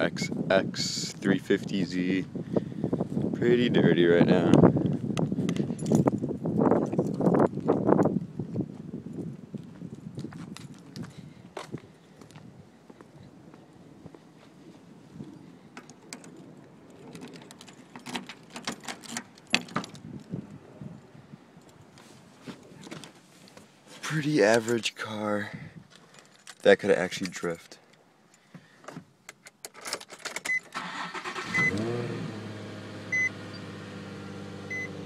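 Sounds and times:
keys jangling: 5.5s - 7.6s, 15.8s - 20.1s, 26.0s - 27.4s, 29.3s - 30.5s.

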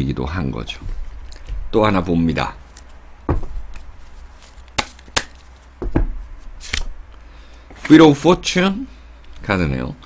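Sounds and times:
cards clicking: 2.6s - 3.0s, 3.7s - 6.0s, 6.6s - 7.6s.

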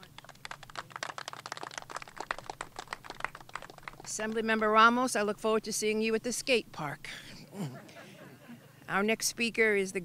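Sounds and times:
small crowd applauding: 0.0s - 4.4s.

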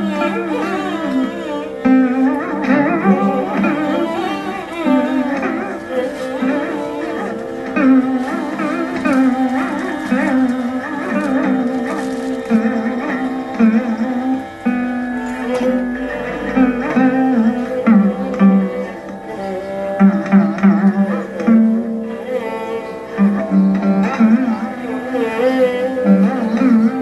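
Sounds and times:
slide lute melody: 0.0s - 27.0s
violin: 0.0s - 27.0s.

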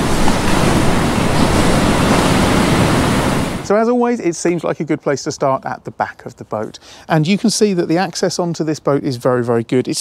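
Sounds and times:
rushing water: 0.0s - 3.8s.

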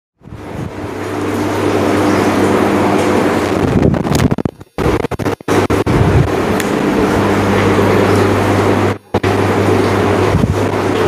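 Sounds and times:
loud mechanical hum with hiss: 0.2s - 11.0s.

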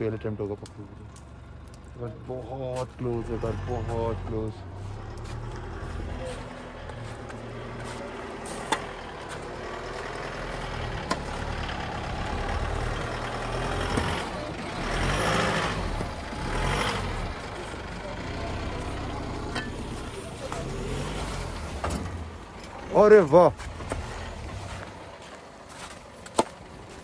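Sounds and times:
diesel engine under load: 0.0s - 27.0s
tyre noise on snow: 4.8s - 9.5s.

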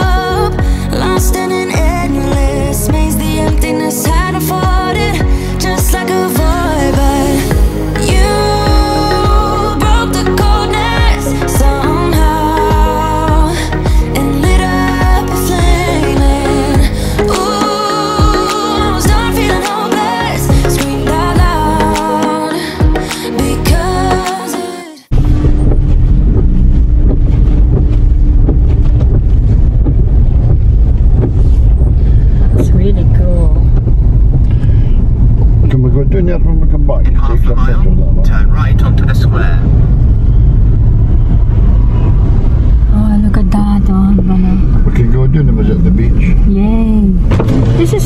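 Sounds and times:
car cabin road rumble: 0.0s - 22.0s, 25.1s - 48.0s.

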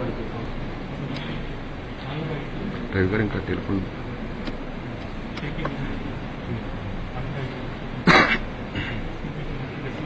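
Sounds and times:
low crowd voices: 0.0s - 10.0s
steady background noise: 0.0s - 10.0s.

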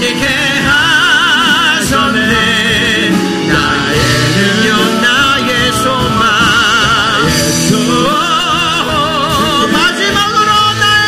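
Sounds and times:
worship band playing: 0.0s - 11.0s.

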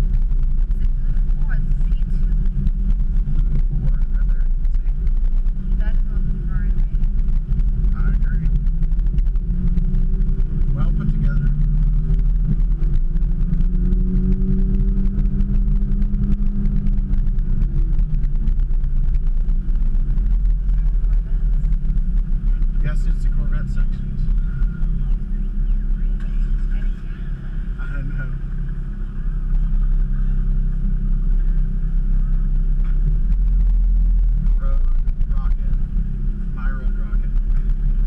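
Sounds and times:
car engine running at low speed: 0.0s - 38.0s.

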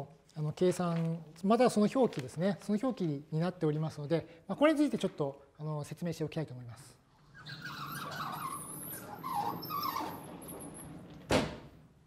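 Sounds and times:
high-pitched squeaks: 7.3s - 10.9s.

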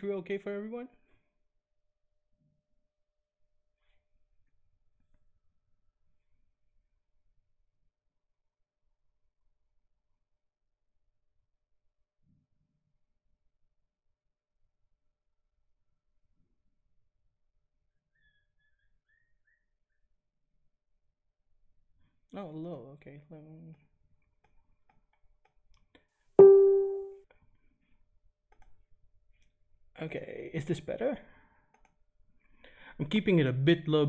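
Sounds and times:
man speaking: 30.0s - 31.2s, 33.0s - 34.0s
short breath: 32.5s - 33.0s.

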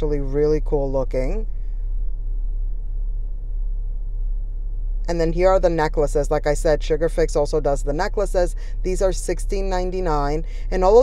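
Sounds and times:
low indoor rumble: 0.0s - 11.0s.

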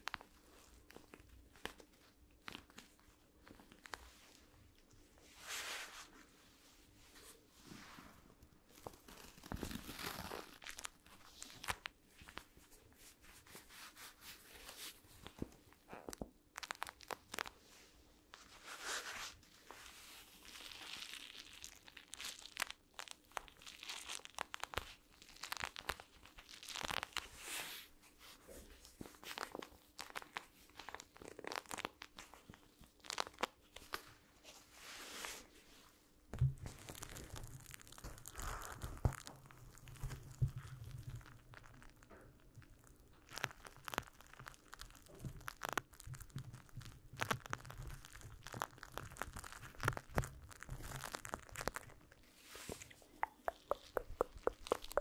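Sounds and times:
cloth rubbing on microphone grille: 5.2s - 8.4s, 12.3s - 15.4s, 18.4s - 20.4s, 52.2s - 55.0s.

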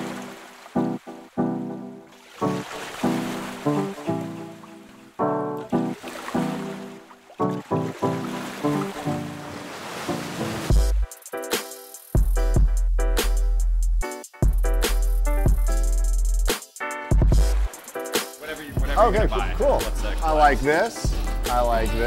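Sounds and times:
rhythmic struck notes music: 10.6s - 22.0s.

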